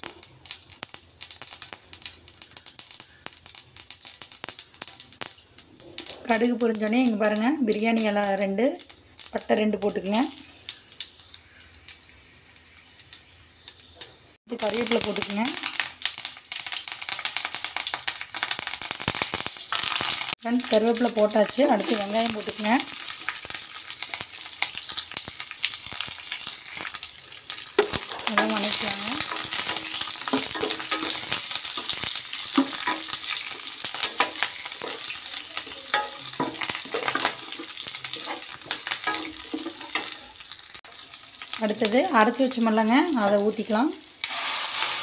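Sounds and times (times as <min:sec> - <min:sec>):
hot oil crackling and spitting: 0:00.0 - 0:45.0
steady sizzle: 0:00.0 - 0:45.0
steel spoon clinking on pan: 0:27.8 - 0:40.4.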